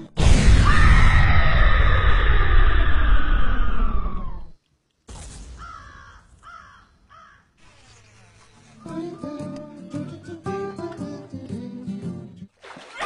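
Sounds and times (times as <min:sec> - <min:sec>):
bird cawing: 0:05.6 - 0:07.6.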